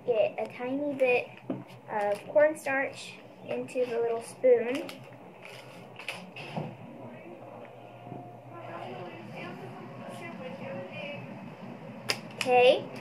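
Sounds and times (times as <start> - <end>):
quiet indistinct talking: 6.8 - 11.6.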